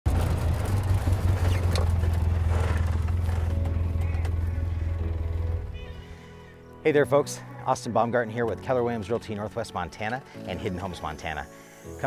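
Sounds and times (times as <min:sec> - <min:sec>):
utility vehicle engine droning: 0:00.1 - 0:06.8.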